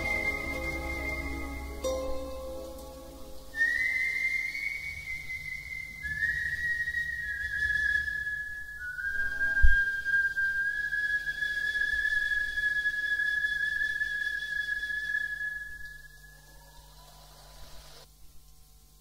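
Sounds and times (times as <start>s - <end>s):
high whistle-like tone: 0.0s - 16.8s.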